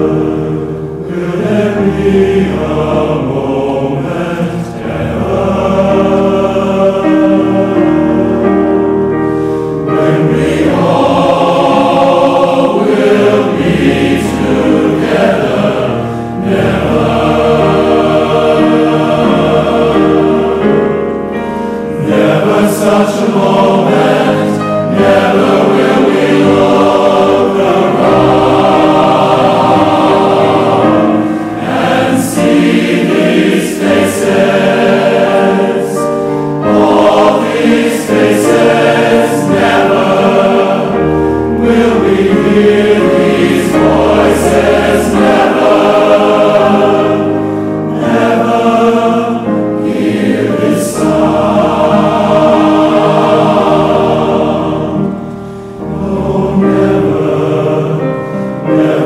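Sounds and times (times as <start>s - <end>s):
choir singing in harmony: 0.0s - 59.0s
grand piano accompaniment: 0.0s - 59.0s.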